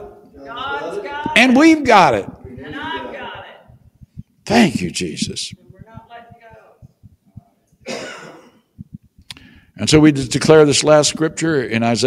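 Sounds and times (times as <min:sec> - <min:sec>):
man coughing: 0:07.8 - 0:08.8.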